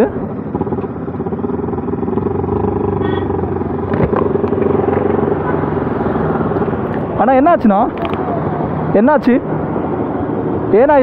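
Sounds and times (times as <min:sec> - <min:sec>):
motorcycle engine cruising: 0:00.0 - 0:11.0
wind and road noise: 0:00.0 - 0:11.0.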